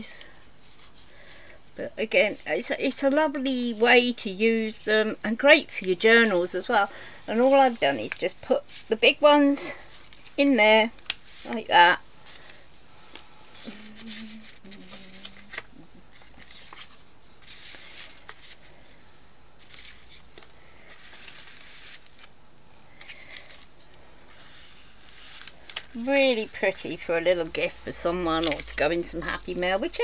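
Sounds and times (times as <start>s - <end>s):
paper tags rustling: 5.4s - 19.0s, 19.6s - 22.3s, 23.0s - 30.0s
person humming: 13.6s - 16.1s.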